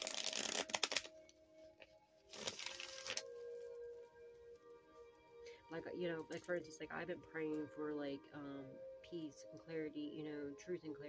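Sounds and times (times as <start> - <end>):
cards being riffle-shuffled: 0.0 - 1.1, 2.3 - 3.3
soft background music: 0.0 - 11.0.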